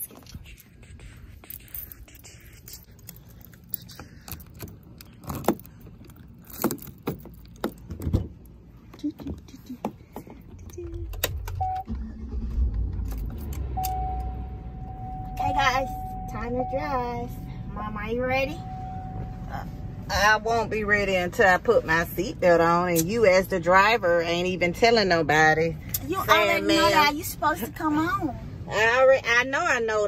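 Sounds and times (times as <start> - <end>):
truck engine rumbling: 0.2 - 29.7
keys jangling: 1.3 - 8.2
steady high tone: 13.6 - 20.8.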